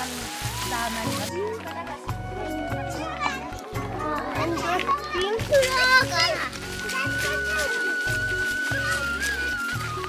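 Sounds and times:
background music: 0.0s - 10.0s
children chattering: 2.4s - 10.0s.

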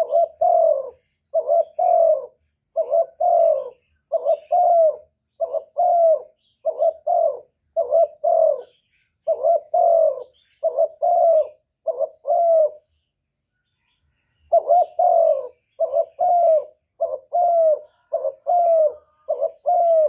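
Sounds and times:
dove cooing: 0.0s - 13.0s, 14.4s - 20.0s.

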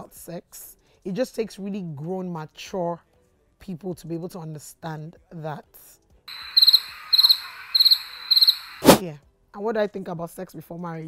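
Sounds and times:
crickets chirping: 6.3s - 9.0s.

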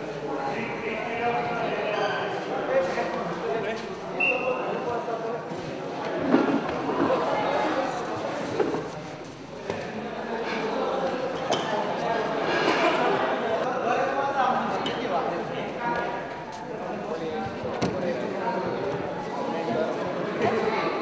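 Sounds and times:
voices talking in echoing hall: 0.0s - 21.0s.

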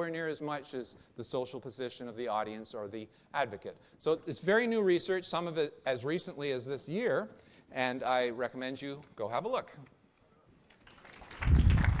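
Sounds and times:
audience applause: 10.8s - 12.0s.

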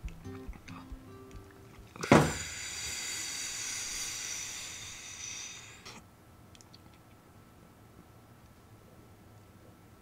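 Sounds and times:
high ringing hiss: 2.0s - 6.0s.

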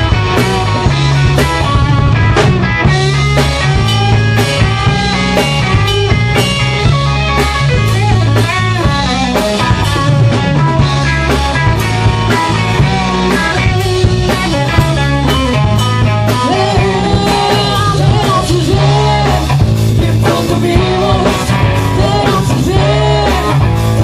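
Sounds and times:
rock band playing: 0.0s - 24.0s.

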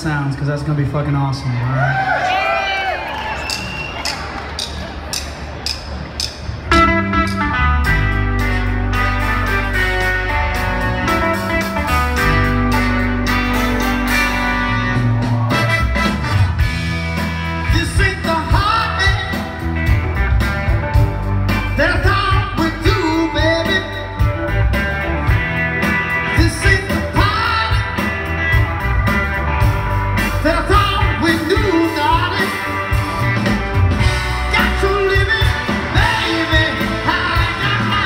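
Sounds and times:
live soul band playing: 0.0s - 38.0s
man singing: 17.6s - 19.6s, 21.8s - 24.3s, 26.3s - 28.1s, 30.4s - 32.7s, 34.5s - 38.0s.

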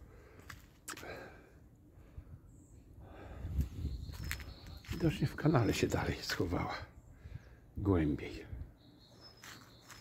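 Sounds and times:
footsteps on paved path: 0.2s - 1.4s, 3.5s - 6.5s, 9.1s - 10.0s.

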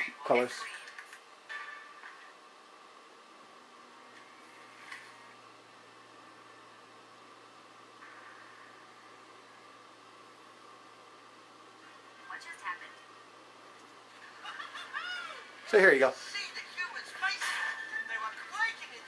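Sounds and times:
low hum: 1.1s - 15.7s.

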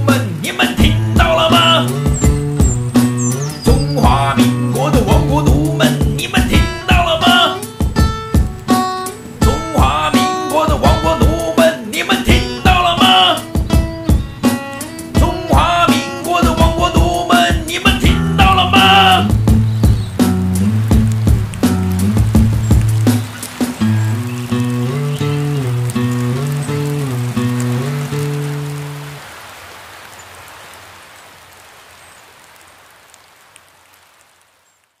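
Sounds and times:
low held instrumental notes: 18.0s - 29.2s.

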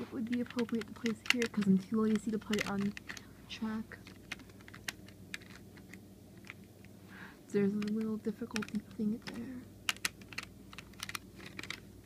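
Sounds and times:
plastic toy track clicks: 0.2s - 3.3s, 7.7s - 11.8s.

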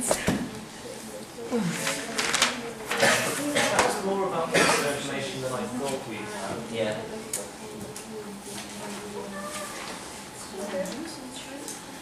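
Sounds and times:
indistinct conversation: 0.0s - 12.0s.

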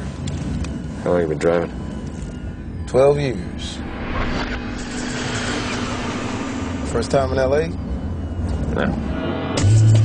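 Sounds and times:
steady low hum: 0.0s - 10.0s
vehicle rushing sound: 3.6s - 8.4s.

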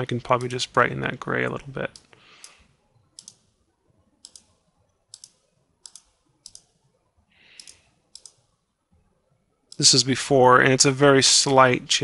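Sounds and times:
soft hissy sounds: 0.0s - 12.0s
computer mouse clicks: 1.9s - 3.5s, 4.2s - 6.8s, 7.5s - 8.5s.

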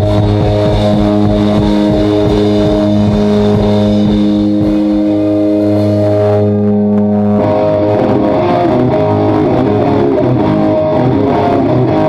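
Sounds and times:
distorted electric guitar chord: 0.0s - 12.0s
low notes sliding: 0.0s - 12.0s.

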